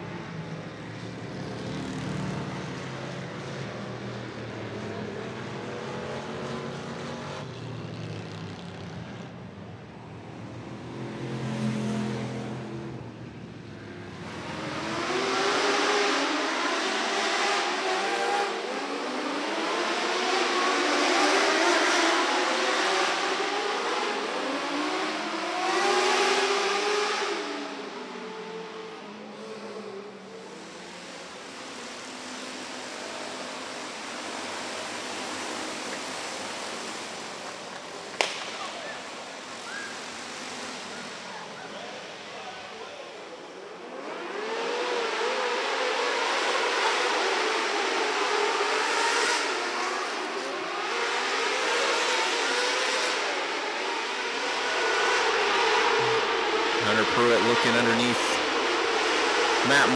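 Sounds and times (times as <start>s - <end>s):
deep stock car engines: 0.0s - 59.9s
high-revving sprint car engines: 0.0s - 59.9s.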